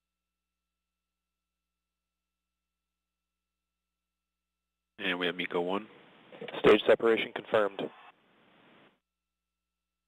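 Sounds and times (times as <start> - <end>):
faint steady hum: 5.0 - 9.0
faint hiss: 5.7 - 9.0.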